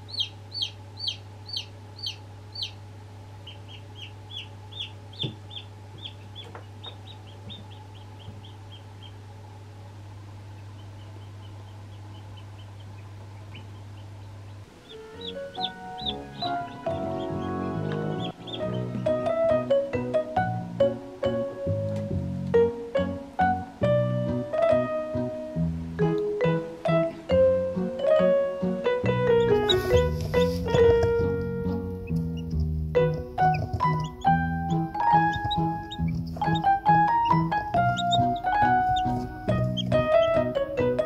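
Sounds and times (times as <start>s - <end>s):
chicks peeping: 0.0s - 2.8s, 3.4s - 9.4s, 10.4s - 20.1s, 29.0s - 41.0s
steady low hum: 0.0s - 21.1s, 29.0s - 41.0s
music: 14.7s - 41.0s.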